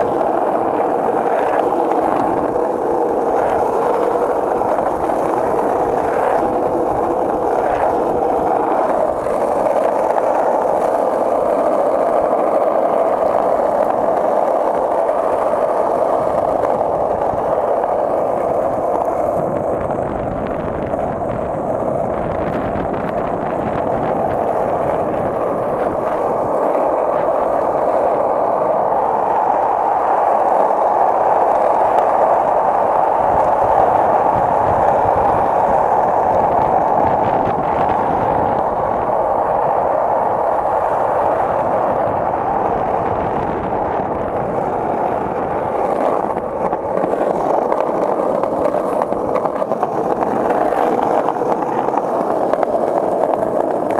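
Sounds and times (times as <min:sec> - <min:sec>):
skateboard wheels rolling on asphalt: 0:00.0 - 0:53.9.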